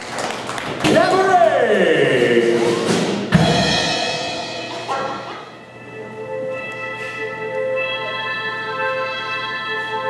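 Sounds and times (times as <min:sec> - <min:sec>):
instrumental music chords: 0:03.3 - 0:10.0.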